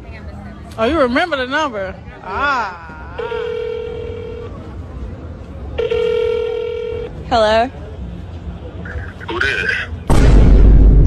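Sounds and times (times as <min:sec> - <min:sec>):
phone ringback tone: 0:03.2 - 0:04.6, 0:05.8 - 0:07.1.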